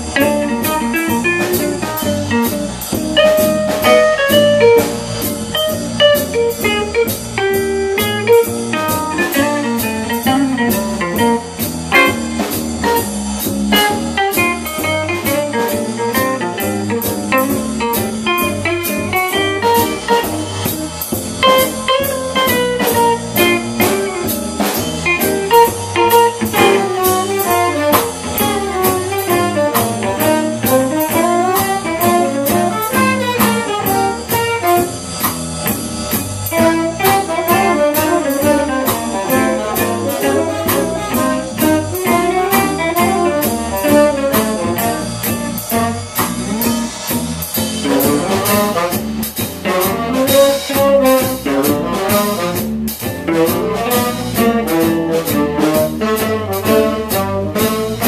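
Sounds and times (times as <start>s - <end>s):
drum kit beat: 0.0s - 58.0s
guitars: 0.0s - 58.0s
tenor saxophone: 17.4s - 35.4s, 36.4s - 47.1s, 47.8s - 58.0s.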